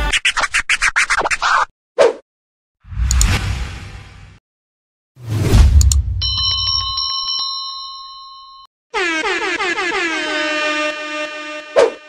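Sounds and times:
sharp click: 3.0 - 3.4, 5.7 - 6.0
bell-like ring with clicks: 6.2 - 8.7
sustained horn-like chord: 9.9 - 12.0.

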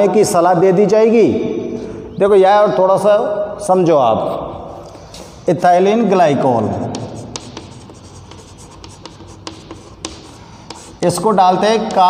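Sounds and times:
chalk scratching on chalkboard: 6.6 - 12.0.

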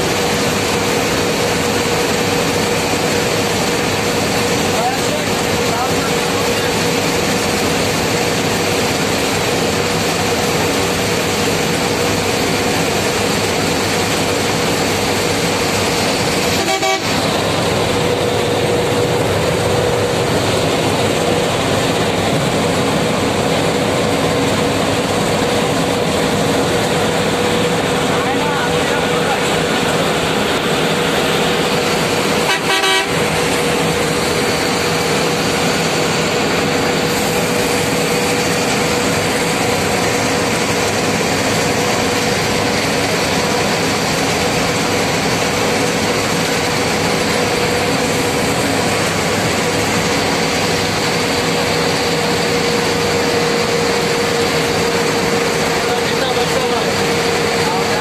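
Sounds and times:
road and engine noise inside vehicle: 0.0 - 58.0.

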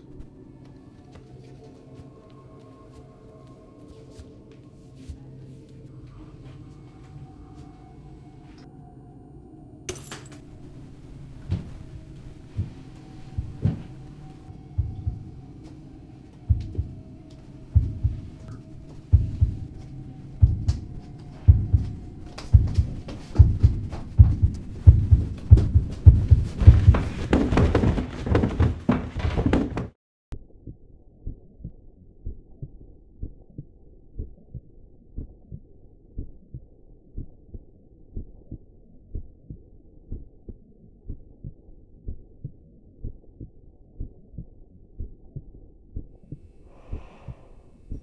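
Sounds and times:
heartbeat thumps: 11.5 - 15.7, 16.4 - 30.0, 30.6 - 48.0.

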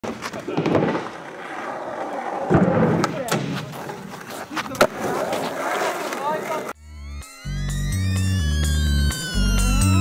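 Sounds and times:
skateboard landing clack: 0.0 - 1.4, 2.4 - 4.0
skateboard wheels rolling on concrete: 0.0 - 6.8.

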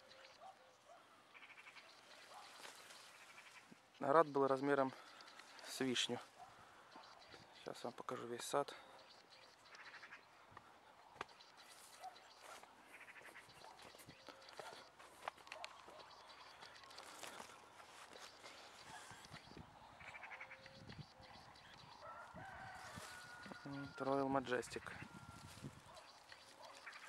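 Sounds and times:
distant chickens calling: 0.0 - 27.0
leaves and branches rustling: 0.0 - 27.0.

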